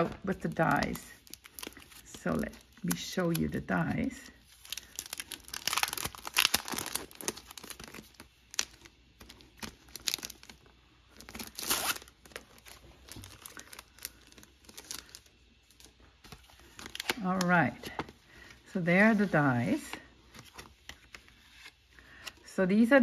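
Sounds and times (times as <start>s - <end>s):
plastic packaging crinkling: 0.0s - 18.4s.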